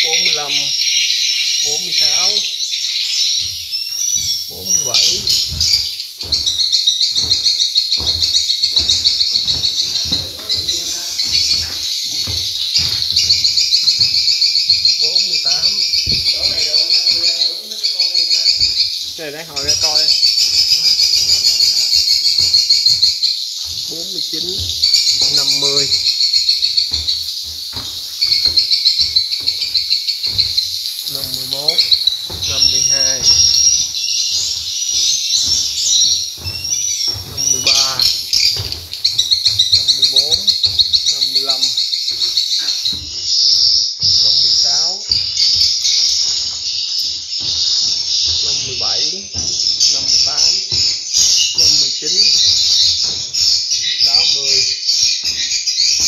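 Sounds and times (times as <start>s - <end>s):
high chirping twitter of swiftlets: 0.0s - 56.0s
lower chirps: 0.0s - 56.0s.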